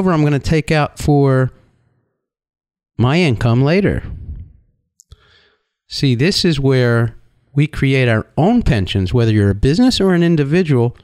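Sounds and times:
man speaking: 0:00.0 - 0:01.6, 0:03.0 - 0:04.6, 0:05.9 - 0:11.0.

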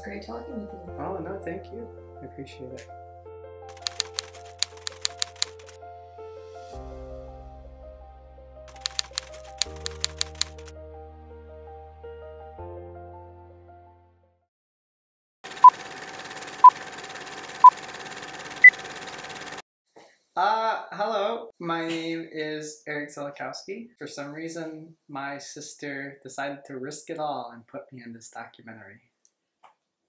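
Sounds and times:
background music with held notes: 0:00.0 - 0:14.4
typewriter key clicks: 0:03.7 - 0:05.8, 0:08.7 - 0:10.7.

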